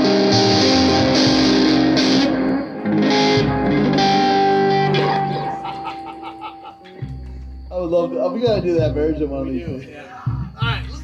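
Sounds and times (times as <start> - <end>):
electric guitar ringing chords: 0.0 - 9.6.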